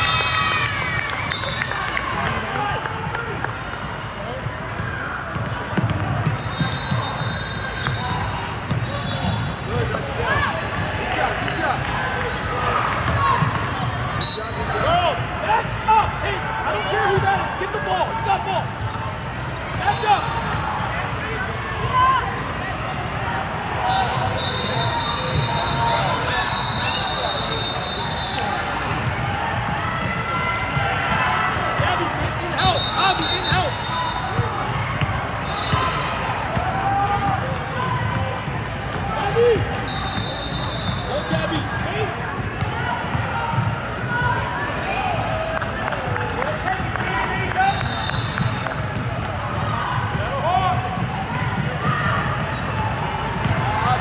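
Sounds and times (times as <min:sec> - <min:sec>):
indistinct shouts and chatter: 0:00.0 - 0:54.0
sneakers squeaking: 0:00.0 - 0:54.0.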